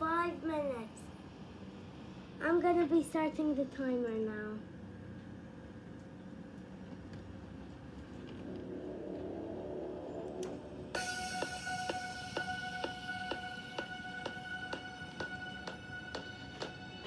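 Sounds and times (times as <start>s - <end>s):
held tones over ticking beat: 8.4s - 17.0s
swelling music intro: 8.4s - 17.0s.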